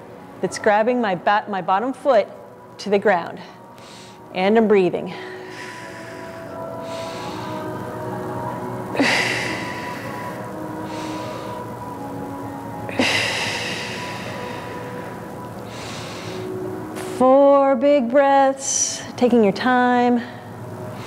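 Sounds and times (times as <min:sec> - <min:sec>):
quiet background music: 0:00.0 - 0:21.0
slow deep breathing: 0:05.1 - 0:07.9, 0:09.0 - 0:11.8, 0:12.9 - 0:16.7.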